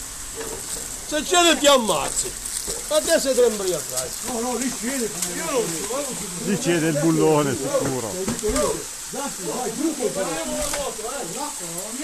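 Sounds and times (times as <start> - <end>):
shallow running water: 0.0 - 12.0
people talking indistinctly: 1.1 - 12.0.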